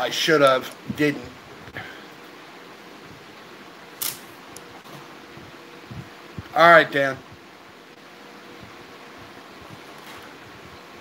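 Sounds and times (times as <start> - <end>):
room hiss: 0.0 - 11.0
sharp click: 4.0 - 4.7.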